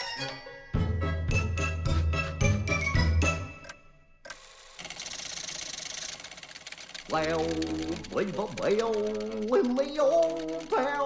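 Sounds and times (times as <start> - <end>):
cartoon music with bell chimes: 0.0 - 4.1
clockwork mechanism whirring: 4.2 - 11.0.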